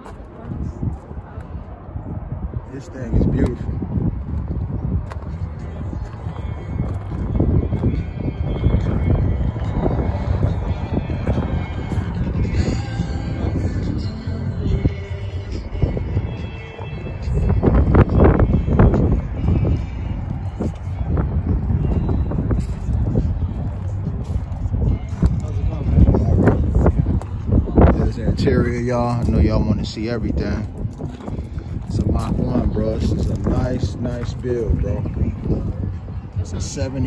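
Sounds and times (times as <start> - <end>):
distant crowd voices: 0.0 - 37.0
faint background music: 0.0 - 37.0
wind buffeting microphone: 0.0 - 37.0.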